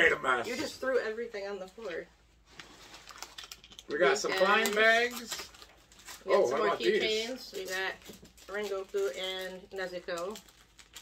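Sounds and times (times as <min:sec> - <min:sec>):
packaging crinkling: 0:02.5 - 0:11.0.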